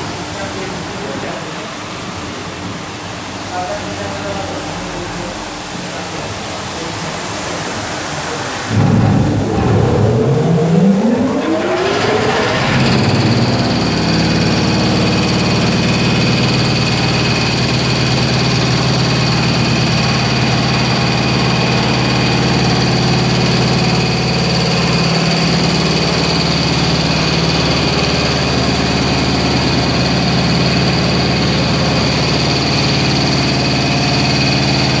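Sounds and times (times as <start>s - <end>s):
machine motor whine and hum: 8.6s - 24.7s.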